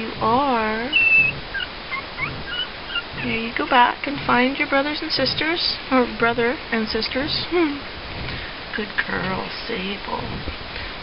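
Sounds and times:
puppy squeaking: 0:00.8 - 0:03.8.

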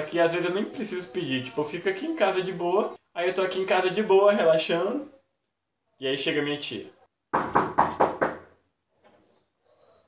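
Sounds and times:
knocking on a door: 0:07.3 - 0:08.6.

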